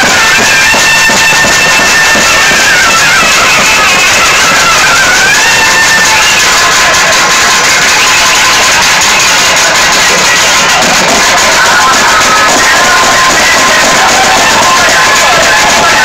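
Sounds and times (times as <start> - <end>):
continuous drumming: 0.0 - 16.0
shrill reed pipe melody: 0.0 - 16.0.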